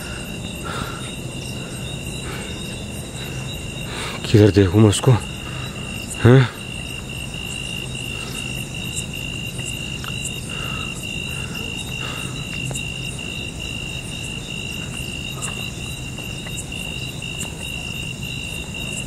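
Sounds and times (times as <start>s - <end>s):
crickets chirping: 0.0s - 19.0s.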